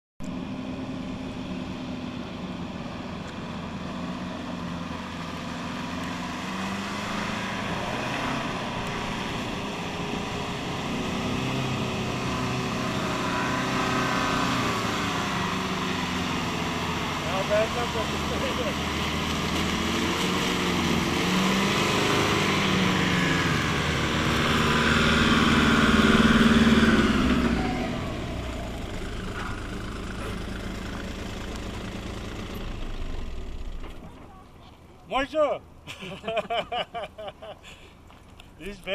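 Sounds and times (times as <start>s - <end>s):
off-road vehicle engine labouring: 0.2s - 38.9s.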